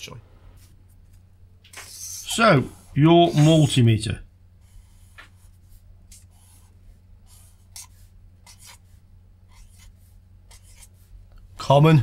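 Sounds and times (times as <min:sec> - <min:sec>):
faint low hum: 0:00.0 - 0:12.0
marker scratching on paper: 0:01.7 - 0:03.7, 0:04.6 - 0:11.1.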